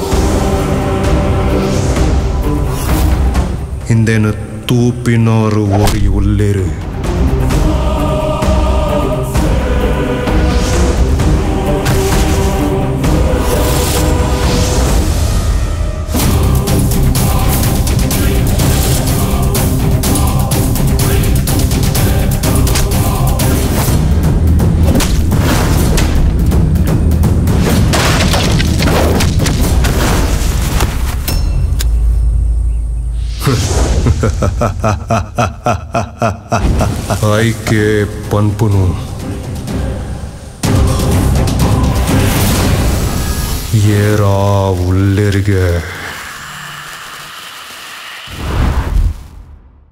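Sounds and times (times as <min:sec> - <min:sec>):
dramatic trailer score: 0:00.0 - 0:49.9
rain-like hiss: 0:42.9 - 0:49.4.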